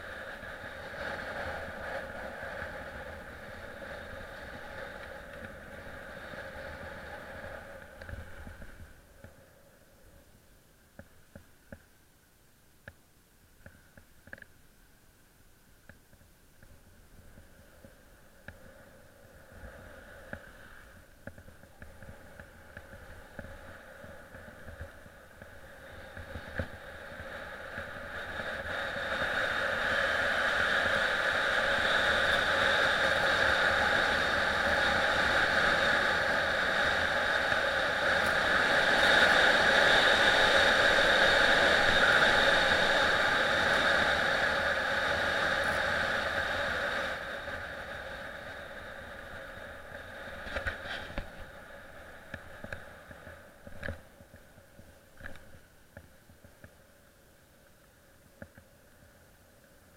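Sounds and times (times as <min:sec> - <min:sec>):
skis running over snow: 0:00.0 - 0:09.4, 0:18.6 - 0:53.6.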